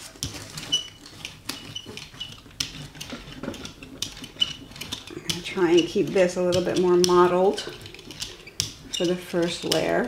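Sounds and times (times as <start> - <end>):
brayer rolling over wet paint: 0.0 - 10.0.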